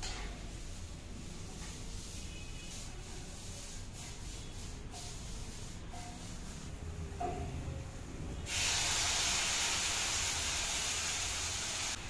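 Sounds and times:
vegetables sizzling in frying pan: 0:08.5 - 0:12.0.

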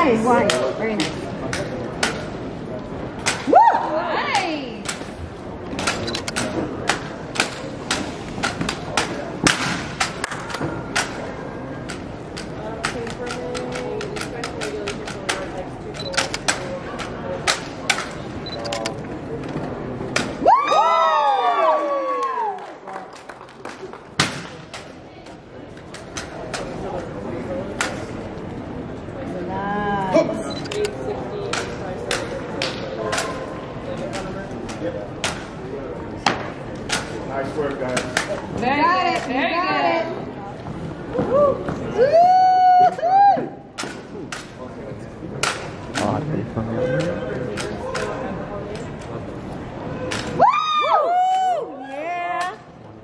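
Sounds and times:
spectators' voices and cheers: 0:03.2 - 0:04.9, 0:20.3 - 0:24.1, 0:41.0 - 0:43.7, 0:49.8 - 0:52.7.

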